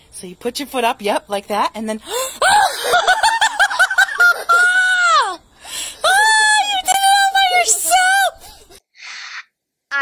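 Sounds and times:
girl giggling: 2.4s - 5.4s.

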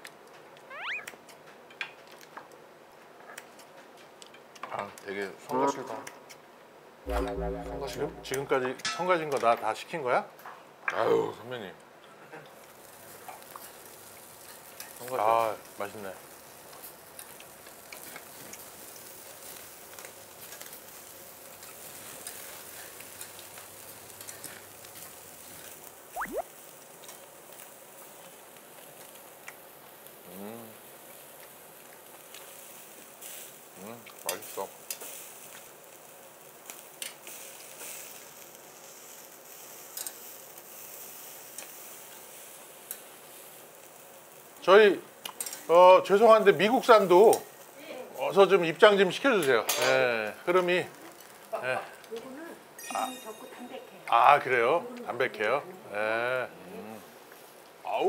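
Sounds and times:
beef sizzling on a grill: 0.0s - 6.6s, 9.0s - 58.0s.

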